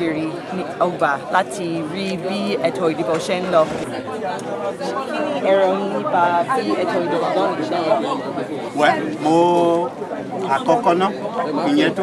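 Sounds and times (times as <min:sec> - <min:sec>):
crowd chatter: 0:00.0 - 0:12.0
people talking close by: 0:00.0 - 0:12.0.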